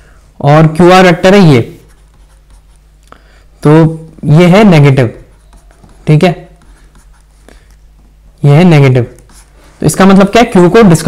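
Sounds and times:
stylus scratching on tablet: 1.6 - 3.0, 5.0 - 8.2, 9.0 - 11.0.

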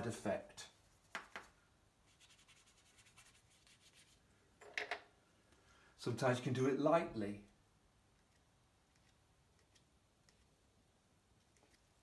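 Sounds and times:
brush scraping on paper: 2.1 - 4.2.

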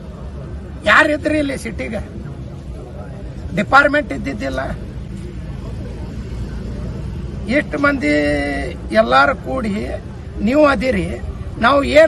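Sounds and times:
road vehicle rumbling by: 1.7 - 12.0
man speaking: 3.5 - 4.9, 7.4 - 12.0.

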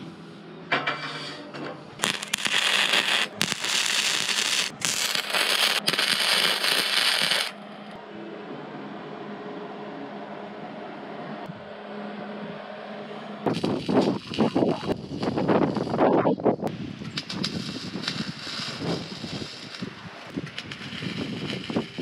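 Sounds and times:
steady hum: 1.9 - 22.0
welding arc crackling: 2.0 - 7.6, 13.5 - 16.2, 17.1 - 22.0.

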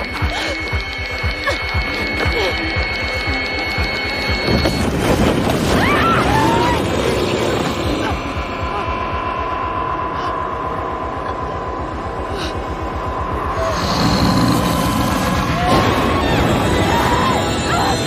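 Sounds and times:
low pulsing rumble: 0.0 - 18.0.

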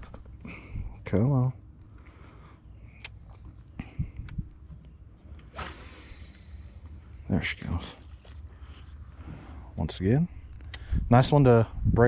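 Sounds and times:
short rushing noise: 5.5 - 6.3
wind on microphone: 10.8 - 12.0.

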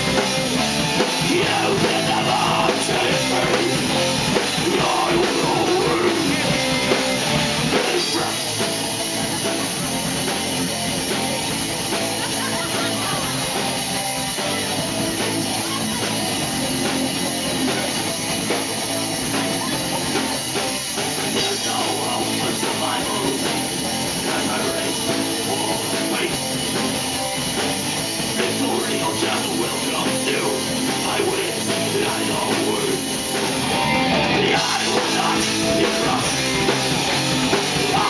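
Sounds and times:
bass guitar: 0.0 - 38.0
drum kit: 0.0 - 38.0
electric guitar: 0.0 - 38.0.

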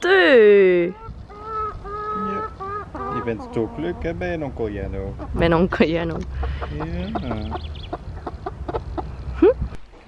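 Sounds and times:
hen clucking softly: 0.9 - 4.1, 5.1 - 9.4.

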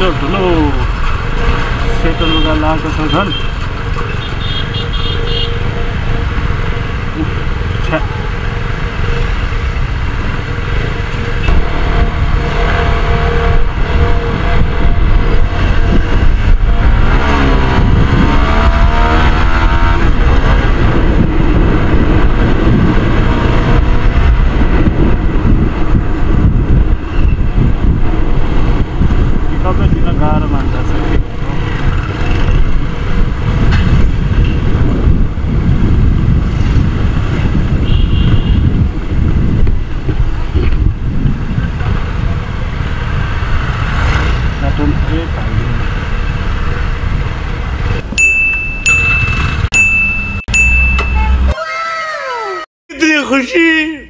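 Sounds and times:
wind noise on microphone: 11.4 - 51.4.

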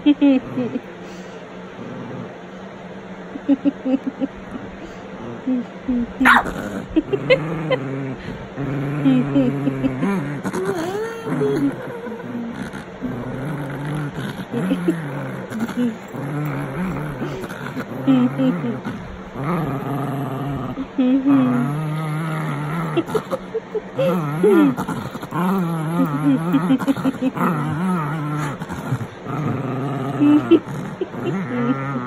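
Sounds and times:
small dog growling: 1.6 - 2.4, 4.5 - 32.0.

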